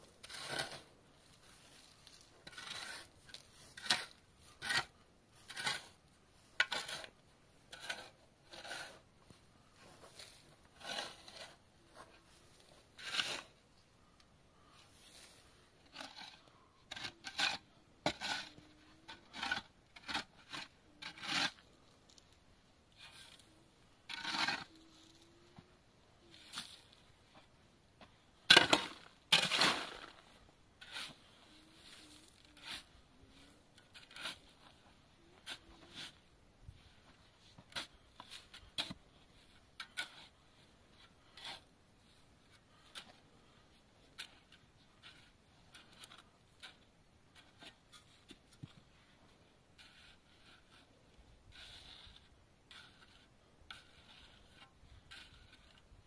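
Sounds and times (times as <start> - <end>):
shovel scraping sand and gravel: 0.0 - 9.1, 9.7 - 13.6, 14.8 - 22.3, 22.9 - 25.4, 26.2 - 27.5, 28.4 - 56.0.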